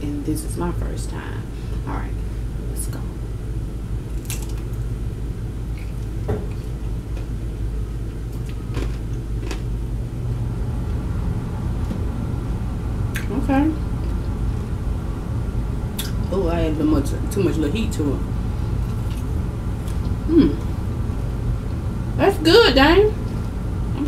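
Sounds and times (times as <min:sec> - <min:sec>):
low hum: 0:00.0 - 0:24.0
crunchy chewing: 0:08.3 - 0:09.8, 0:18.7 - 0:21.4.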